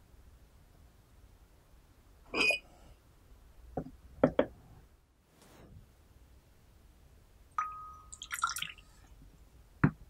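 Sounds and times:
teaware clinking: 7.6 - 8.8.

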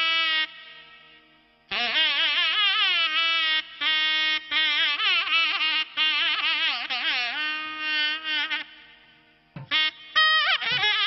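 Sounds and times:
reedy wind instrument melody: 0.0 - 11.0.

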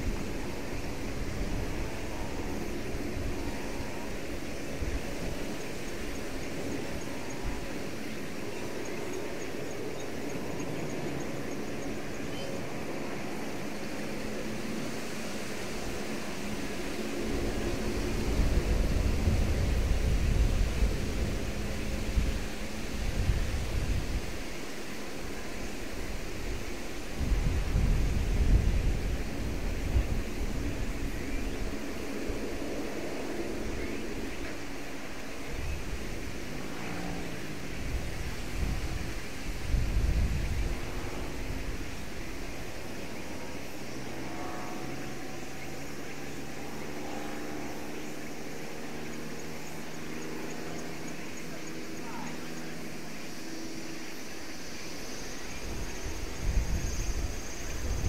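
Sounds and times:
turboprop aircraft taxiing: 0.0 - 58.0.

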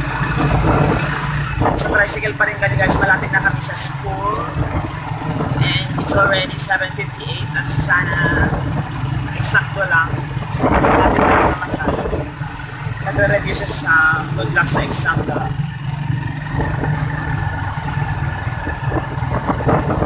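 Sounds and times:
motorcycle engine humming: 0.0 - 20.0.

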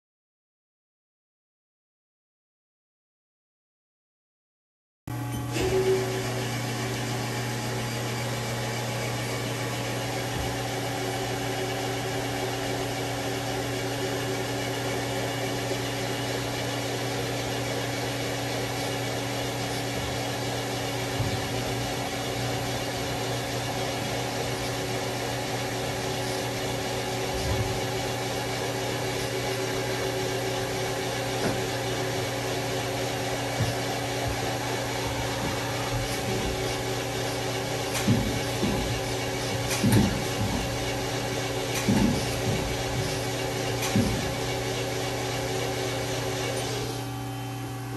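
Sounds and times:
lathe humming: 5.2 - 47.9.

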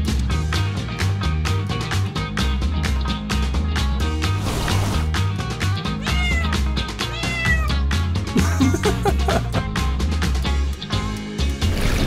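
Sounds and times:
background music with beat: 0.0 - 4.4, 5.1 - 11.7
cat meowing: 6.0 - 7.8.

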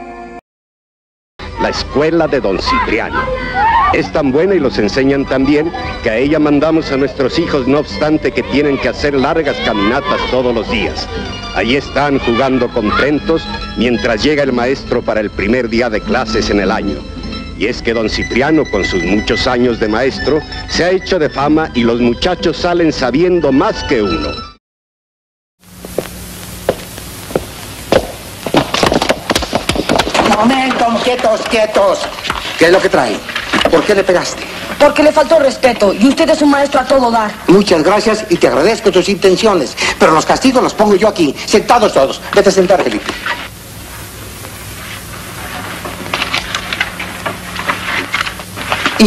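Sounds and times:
old film soundtrack hiss: 1.4 - 24.3, 25.6 - 49.0
thumps of boys scuffling: 26.7 - 34.8
children moving desks and chairs: 28.6 - 36.4, 44.9 - 49.0.

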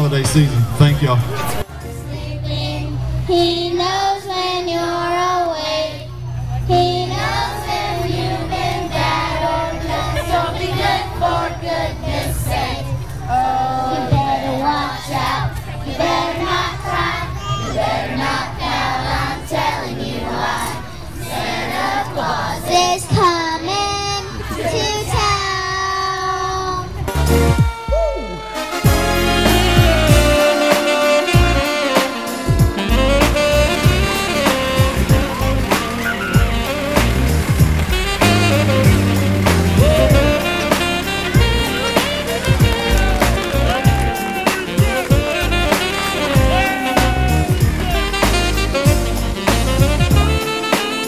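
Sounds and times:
children singing a carol: 1.8 - 27.0
child singing into a microphone: 2.4 - 6.0, 22.7 - 27.0
steady low hum: 31.3 - 46.7.

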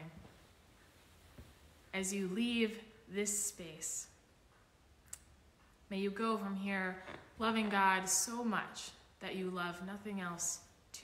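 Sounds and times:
woman speaking: 2.0 - 4.2, 5.9 - 11.0.

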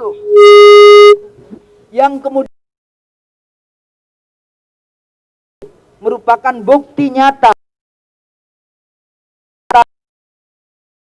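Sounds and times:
steady single-pitched tone: 0.0 - 1.4.

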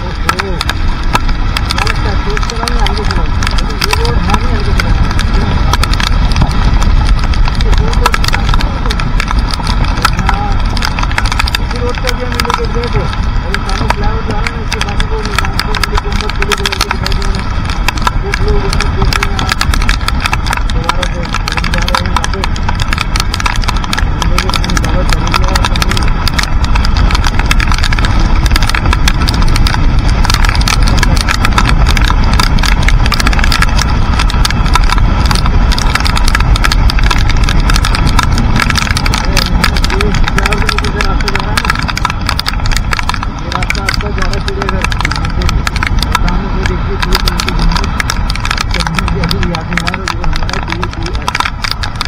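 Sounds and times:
motorcycle engine: 0.0 - 52.0
rain striking microphone: 0.0 - 52.0
tyres on wet road: 0.0 - 52.0
wind buffeting microphone: 0.0 - 52.0.

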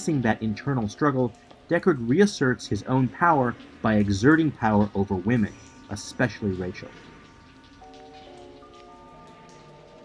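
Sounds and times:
rain-like hiss and patter: 0.0 - 10.0.

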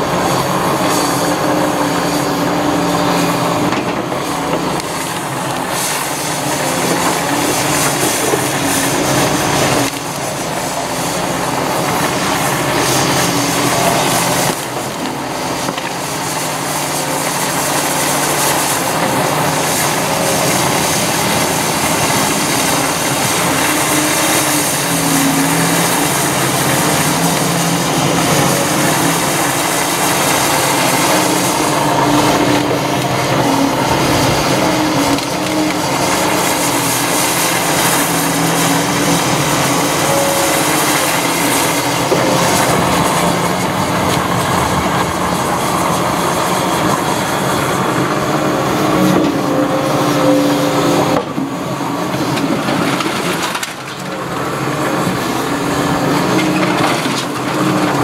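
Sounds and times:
excavator diesel engine under load: 0.0 - 58.0.

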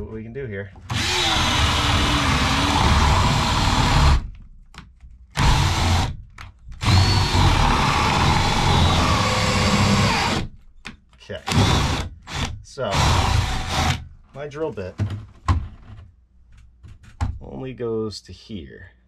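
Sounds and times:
cordless drill boring through wood: 0.9 - 4.3, 5.4 - 6.2, 6.8 - 10.5, 11.5 - 14.0.

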